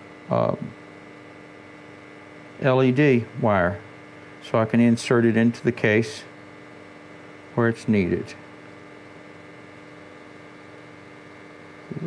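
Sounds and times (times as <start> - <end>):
electrical mains hum: 0.0 - 12.0
faint thin whine: 0.0 - 12.0.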